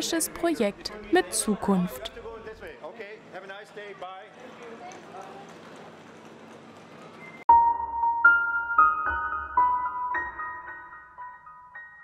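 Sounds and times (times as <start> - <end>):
indistinct voices: 0.0 - 2.8
background noise: 0.0 - 12.0
footsteps of passengers walking: 3.9 - 7.4.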